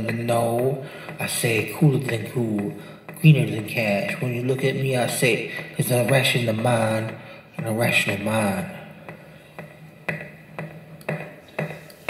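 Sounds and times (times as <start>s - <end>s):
person rapping: 0.0s - 9.2s
sharp percussive knocks: 0.0s - 12.0s.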